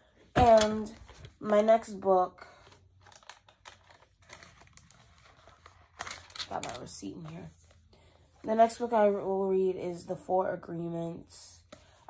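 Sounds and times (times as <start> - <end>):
paper rustling and crinkling: 2.4 - 7.9.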